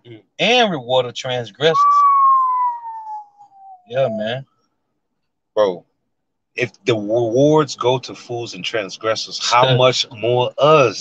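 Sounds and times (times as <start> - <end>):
high whistling note sliding down: 1.7 - 4.2.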